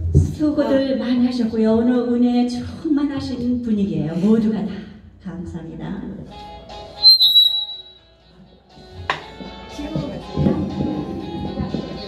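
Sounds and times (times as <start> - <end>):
microphone feedback squeal: 7.0 - 8.1.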